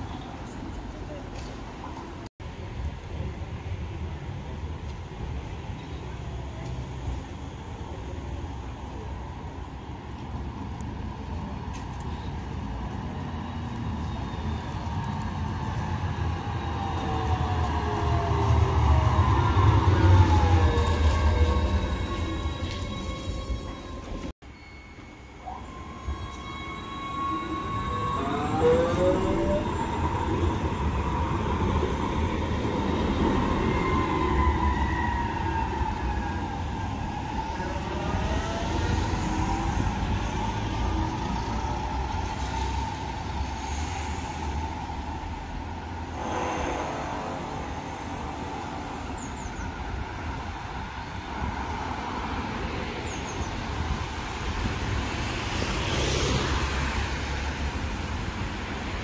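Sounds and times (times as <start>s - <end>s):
wheels rumbling on rails: 0.0s - 59.0s.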